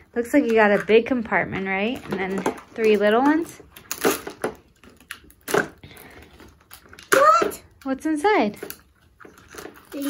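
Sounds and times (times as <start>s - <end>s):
plastic clicks and knocks: 1.9s - 5.8s.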